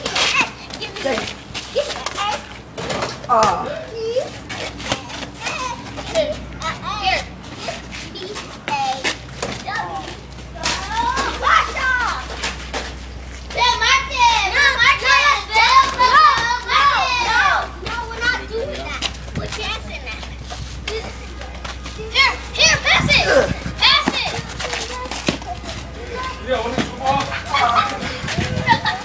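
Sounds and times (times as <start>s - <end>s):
children calling out and shrieking: 0.0s - 29.0s.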